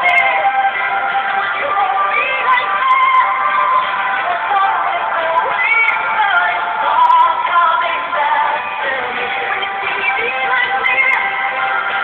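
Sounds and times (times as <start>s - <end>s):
backing music: 0.0s - 12.0s
woman singing: 0.0s - 12.0s.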